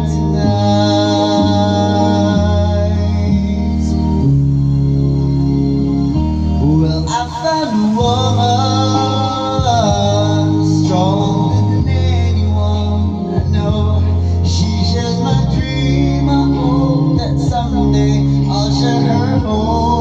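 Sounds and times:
man singing into microphone: 0:00.0 - 0:04.4, 0:06.6 - 0:20.0
karaoke backing music: 0:00.0 - 0:20.0.

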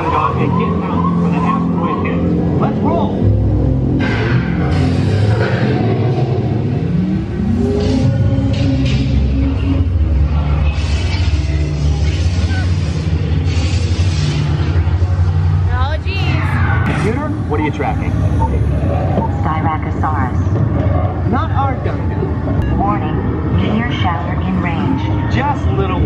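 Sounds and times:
voices: 0:00.0 - 0:03.8, 0:15.6 - 0:26.0
amusement ride onboard music: 0:00.0 - 0:26.0
heavy low rumble: 0:00.0 - 0:26.0.

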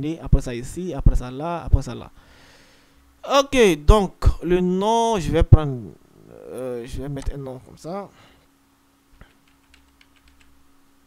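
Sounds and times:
computer keyboard typing: 0:09.2 - 0:10.6.

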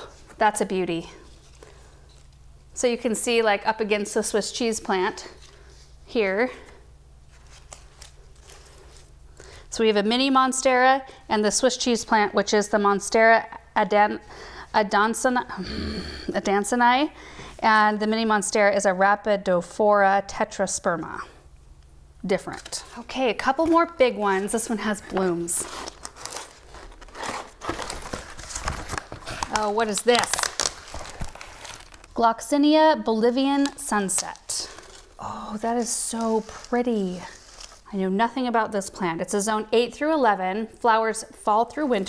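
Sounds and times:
low steady hum: 0:00.0 - 0:42.0
cardboard rustling and scraping: 0:22.6 - 0:32.0.

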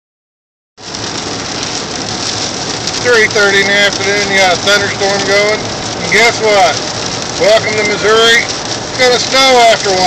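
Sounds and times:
rain on car roof: 0:00.8 - 0:10.0.

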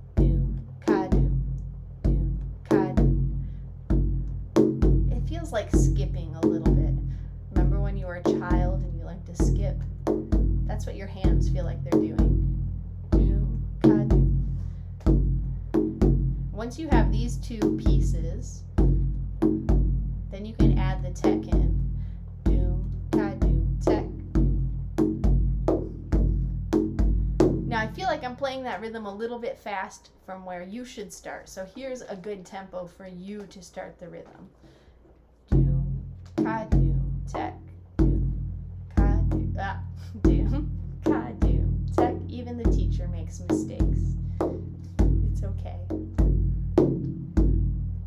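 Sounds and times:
frame drum rhythm: 0:00.0 - 0:28.3, 0:35.5 - 0:48.0.

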